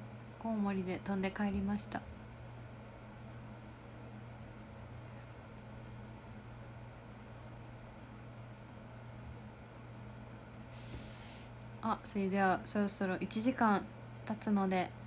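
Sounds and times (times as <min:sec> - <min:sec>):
steady low hum: 0:00.0 - 0:15.0
faint even hiss: 0:10.7 - 0:11.6.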